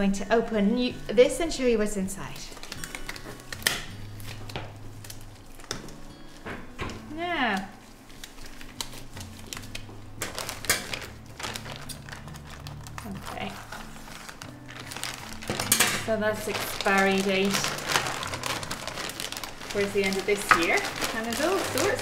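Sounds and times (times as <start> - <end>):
plastic wrapping crinkling: 2.2 - 22.0.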